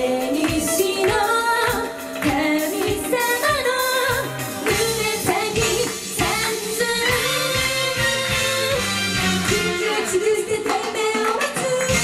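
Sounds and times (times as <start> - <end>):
female vocal group singing: 0.0 - 8.8, 9.5 - 12.0
pop beat: 0.0 - 12.0.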